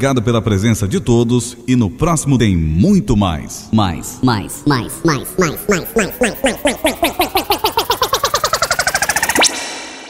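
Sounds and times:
looped stuttering voice: 2.5 - 9.7
rising tone: 4.0 - 10.0.

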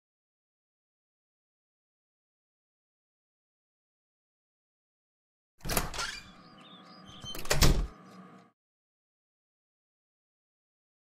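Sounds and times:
door banging shut: 5.6 - 6.4, 7.1 - 8.0.

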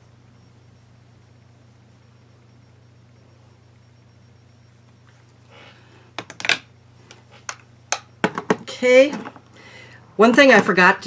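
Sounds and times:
low room hum: 0.0 - 11.0
plastic containers clattering on table: 8.2 - 9.4.

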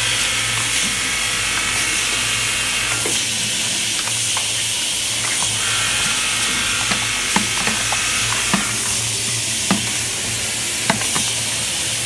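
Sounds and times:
capping machine and conveyor running: 0.0 - 12.0.

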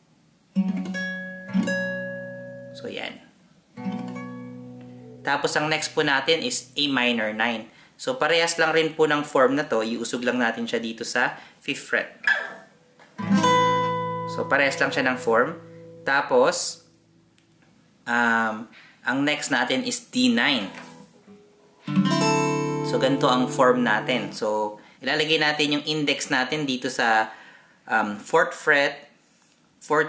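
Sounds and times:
acoustic guitar chord ringing: 0.6 - 2.8, 3.8 - 7.2, 12.8 - 17.4, 20.8 - 24.4.

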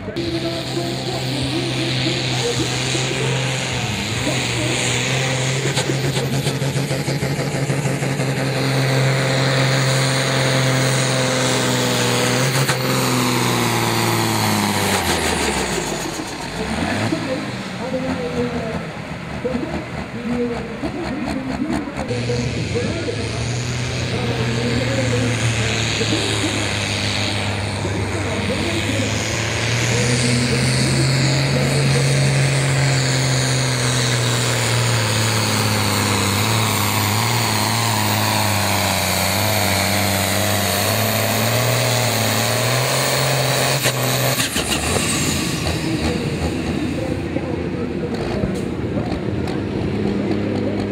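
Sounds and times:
pulling tractor engines revving: 0.0 - 50.9.

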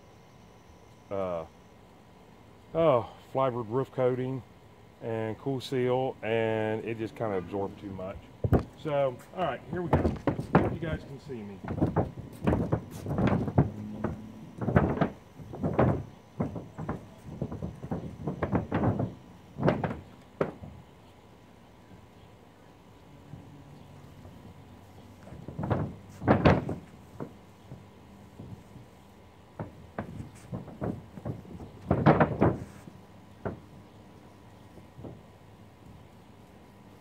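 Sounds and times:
paint roller on roof: 7.5 - 20.7, 23.9 - 33.7
footsteps in flip-flops on roof: 8.4 - 20.9, 23.2 - 33.8.

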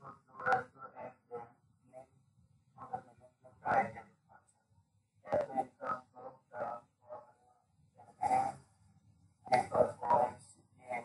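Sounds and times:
person speaking over video call: 0.0 - 8.7, 9.4 - 11.0.

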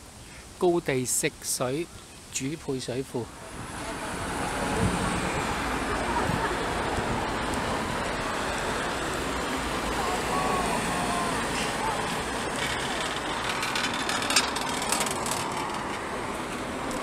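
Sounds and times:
road traffic noise: 1.7 - 17.0.

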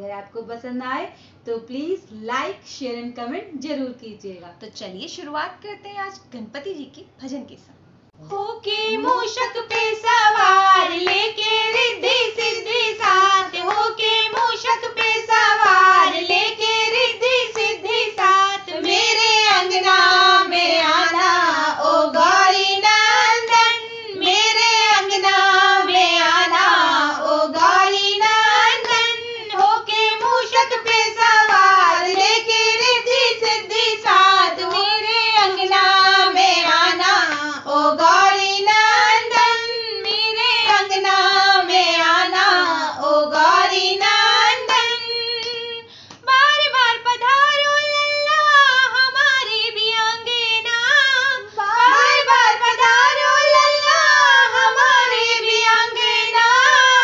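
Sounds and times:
women singing in unison: 8.2 - 57.0.

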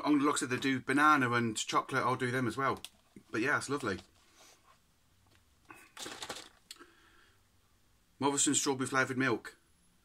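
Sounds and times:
cardboard carton crinkling: 5.8 - 6.7.

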